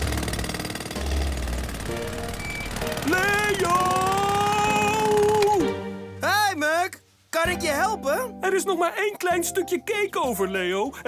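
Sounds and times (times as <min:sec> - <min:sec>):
cartoon jackhammer hammering: 0:00.0 - 0:05.7.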